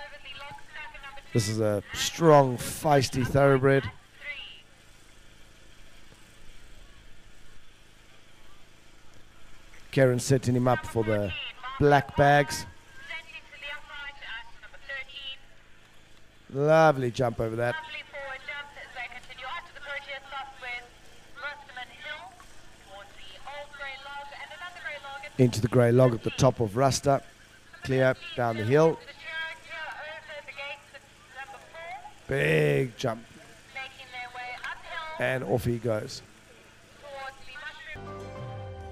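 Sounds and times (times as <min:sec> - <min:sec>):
close commentary: 0:00.0 - 0:38.0
faint steady low hum: 0:00.0 - 0:38.9.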